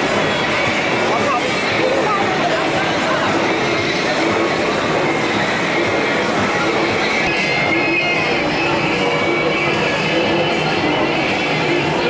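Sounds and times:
fairground ride rumble: 0.0 - 12.0
thin high whine: 0.0 - 12.0.

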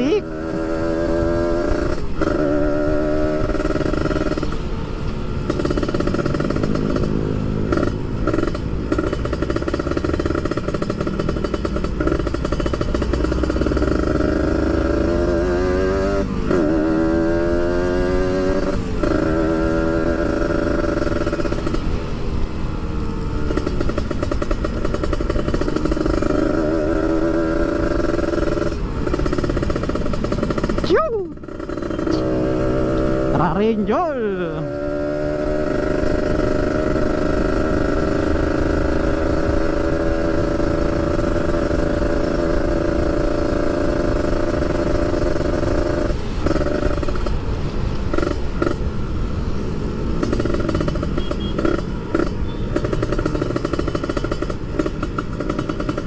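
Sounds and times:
motorcycle engine revving: 0.0 - 56.0.

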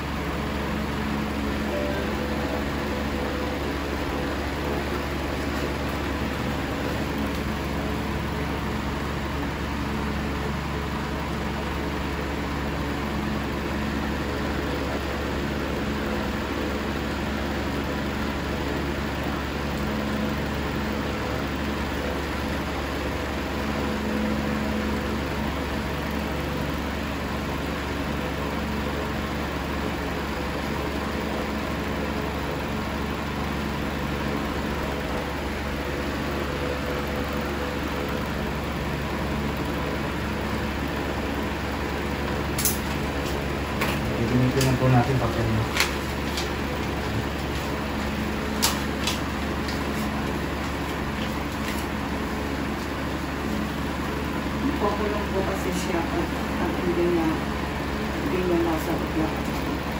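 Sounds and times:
electric fan whirring: 0.0 - 59.9.

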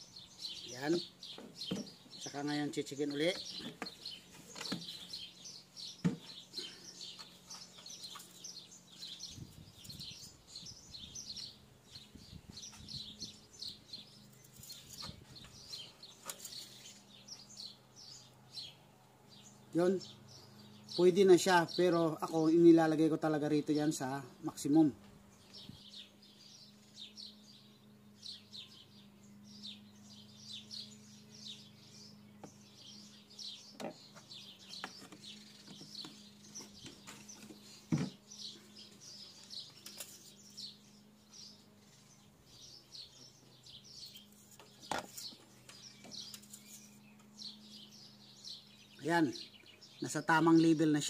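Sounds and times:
small birds chirping: 0.0 - 51.0.

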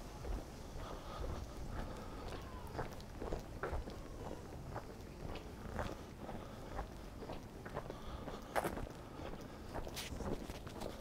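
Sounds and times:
faint street background: 0.0 - 11.0
footsteps on paved street: 0.0 - 11.0.

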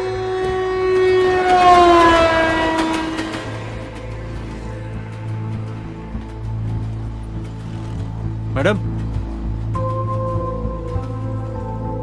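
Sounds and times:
loud multi-note train horn: 0.0 - 5.6.

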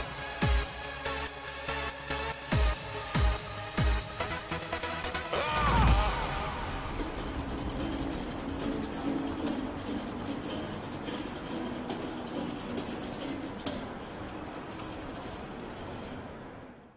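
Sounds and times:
tambourine jingling: 5.8 - 16.9.

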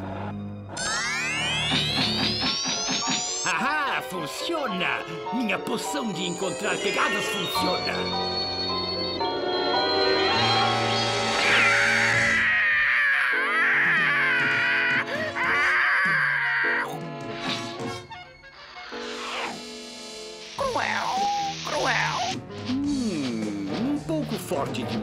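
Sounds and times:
cartoon background music: 0.0 - 25.0
cartoon cat yowling: 11.4 - 16.9.

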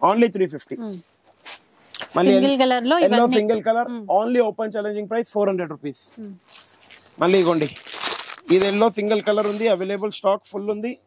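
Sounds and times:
man talking: 0.0 - 1.0, 2.2 - 6.2, 7.2 - 11.0.

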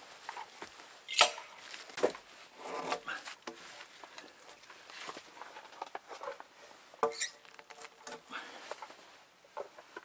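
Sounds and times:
wooden poles scraping: 0.0 - 10.0.

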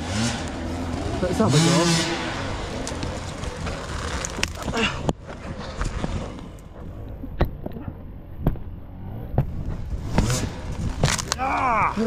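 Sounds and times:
low rumble: 0.0 - 12.0
rotten wood cracking: 2.4 - 12.0.

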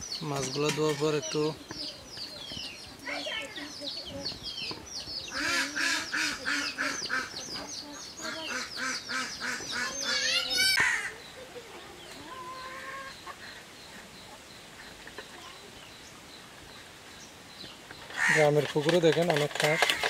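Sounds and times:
fowl honking calls: 5.3 - 7.4, 8.2 - 11.2.

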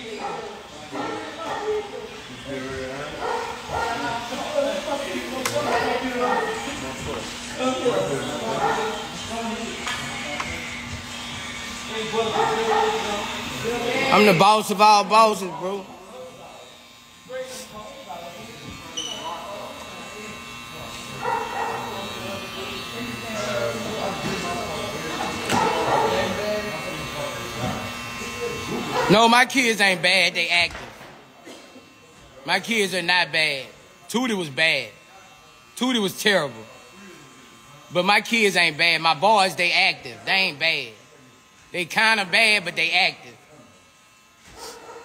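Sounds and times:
electric hair clippers buzzing: 0.0 - 45.0.

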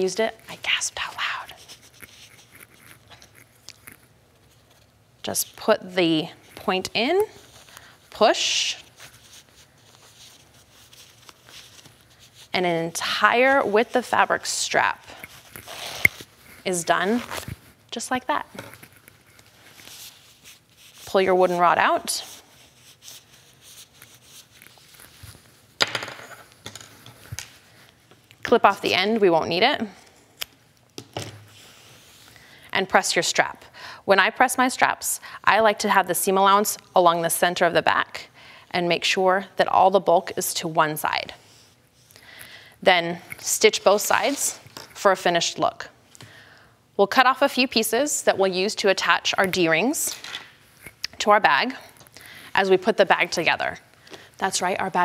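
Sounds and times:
fabric strap rustling: 1.0 - 25.8.

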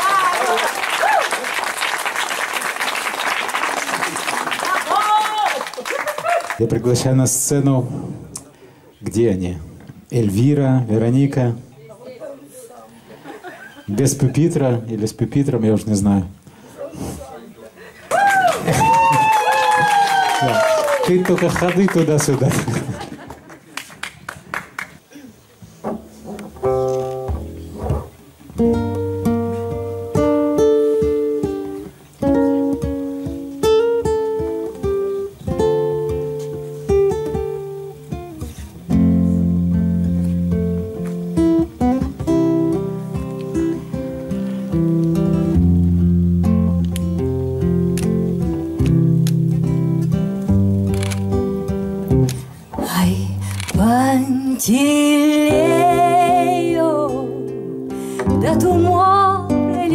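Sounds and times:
acoustic guitars picking: 25.6 - 59.9
person singing: 52.8 - 59.9.

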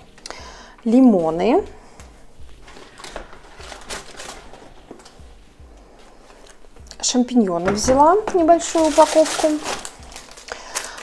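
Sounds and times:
rustling of groceries: 0.0 - 11.0.

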